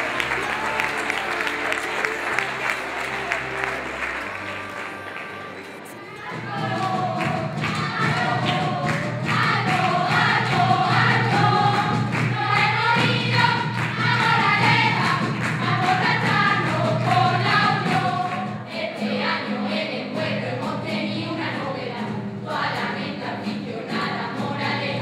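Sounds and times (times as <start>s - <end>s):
acoustic guitar: 0.0s - 25.0s
group singing in chorus: 4.8s - 25.0s
drums keeping steady beat: 6.2s - 18.6s.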